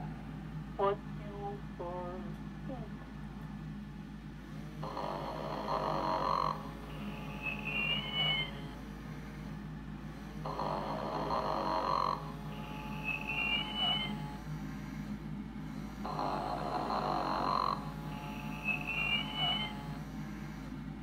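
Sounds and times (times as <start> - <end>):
toy snoring sound: 4.7 - 8.8, 10.4 - 14.5, 16.0 - 20.1.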